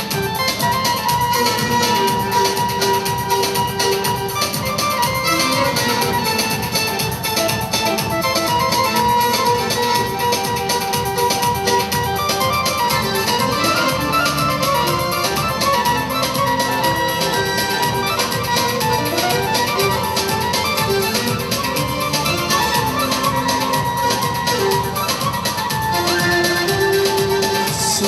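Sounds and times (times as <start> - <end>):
dance music with synthesizer: 0.0 - 28.0.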